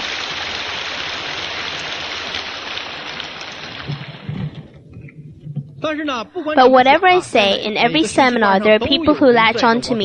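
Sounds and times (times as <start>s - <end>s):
audience applause: 0.0s - 4.6s.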